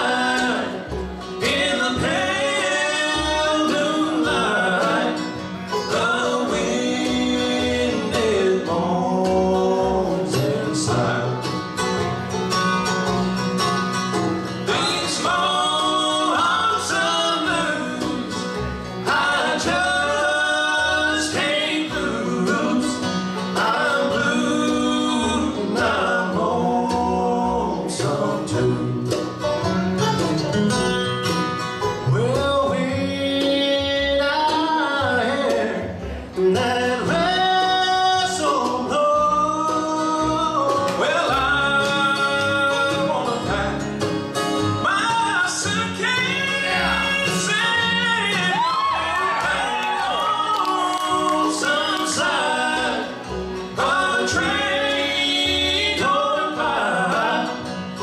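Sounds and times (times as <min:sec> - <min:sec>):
person singing: 0:00.0 - 0:11.5, 0:44.8 - 0:57.7
acoustic guitar: 0:00.0 - 0:58.0
banjo: 0:00.0 - 0:58.0
mandolin: 0:00.0 - 0:58.0
upright bass: 0:00.0 - 0:58.0.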